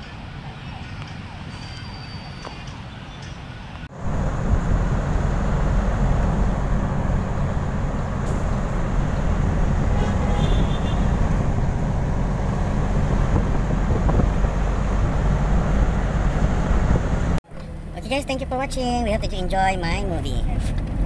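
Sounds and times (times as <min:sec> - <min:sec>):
moving vehicle rumble: 0:00.0 - 0:21.0.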